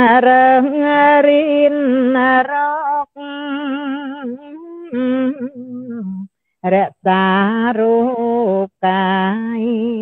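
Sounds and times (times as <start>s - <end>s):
woman singing unaccompanied chant: 0.0s - 10.0s.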